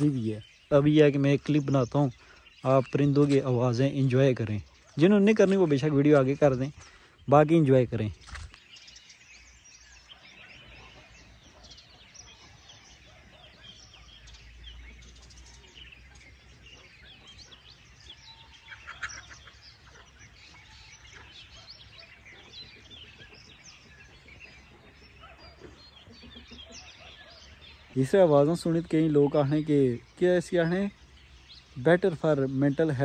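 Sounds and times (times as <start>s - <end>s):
birds chirping: 0.0s - 33.0s.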